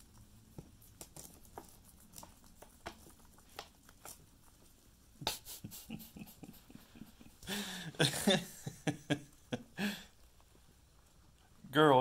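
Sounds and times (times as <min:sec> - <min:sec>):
guinea pigs chewing greens: 0:00.0 - 0:12.0.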